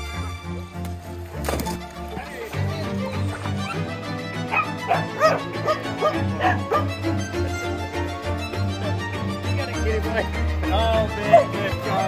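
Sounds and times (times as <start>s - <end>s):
background music: 0.0s - 12.0s
dogs barking and yipping: 2.8s - 7.3s.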